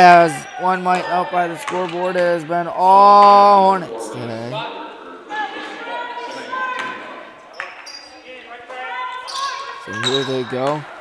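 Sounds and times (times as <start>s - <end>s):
voices of players and crowd: 0.0s - 11.0s
sneaker squeaks: 6.2s - 10.8s.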